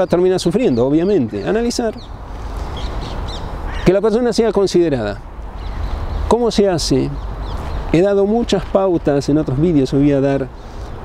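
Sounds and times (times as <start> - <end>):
short bird calls: 1.3 - 4.0.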